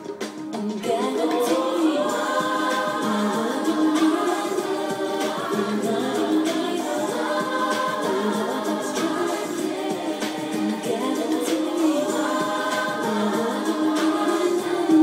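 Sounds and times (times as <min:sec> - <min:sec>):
men singing in harmony: 0:00.8 - 0:15.0.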